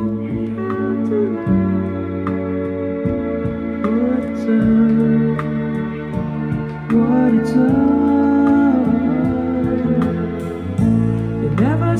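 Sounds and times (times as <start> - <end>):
music with held chords and bass: 0.0 - 11.9.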